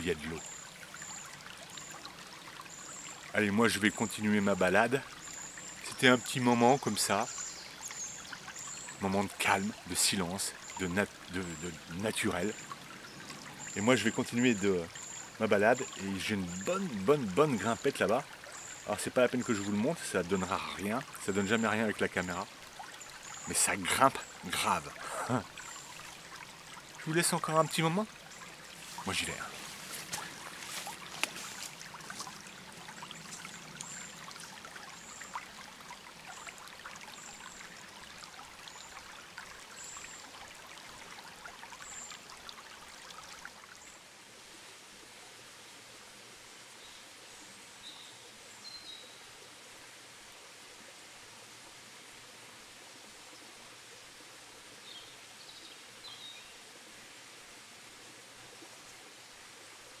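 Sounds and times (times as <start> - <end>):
stream running over rocks: 0.0 - 60.0.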